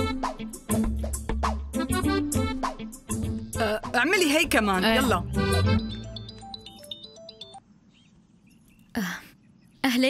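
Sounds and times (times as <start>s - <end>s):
soft high chirps: 5.7s - 9.8s.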